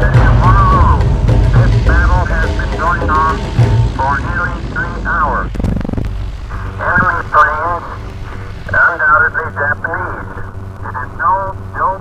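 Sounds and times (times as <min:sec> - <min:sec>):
man reporting over radio: 0:00.0 - 0:05.5, 0:06.6 - 0:08.0, 0:08.7 - 0:12.0
steady low drone: 0:00.0 - 0:12.0.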